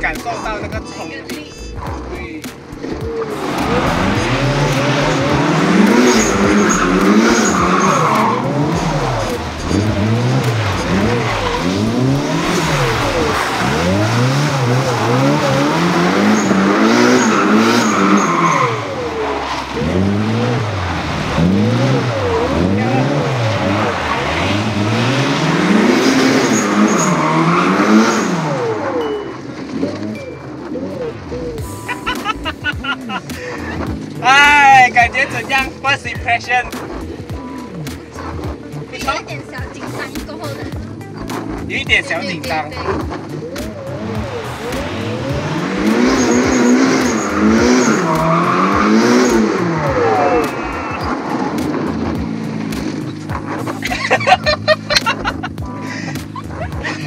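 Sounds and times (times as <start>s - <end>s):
car engine revving: 0.0s - 57.0s
tyre noise on wet track: 1.9s - 57.0s
people laughing: 31.8s - 34.0s, 53.7s - 57.0s.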